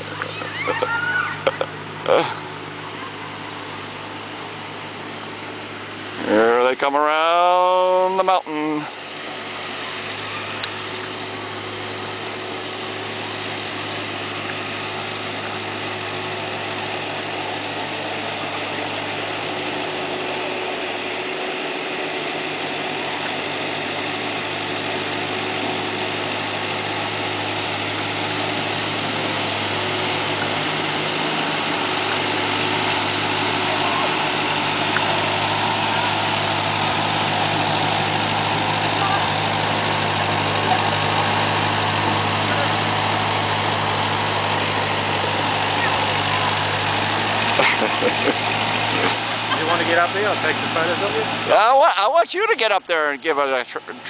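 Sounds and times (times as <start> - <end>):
tractor engine running: 0.0 - 54.0.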